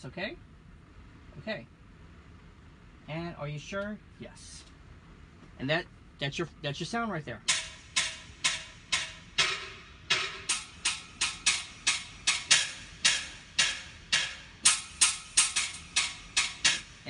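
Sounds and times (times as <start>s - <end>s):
hula sticks strikes: 7.4s - 17.0s.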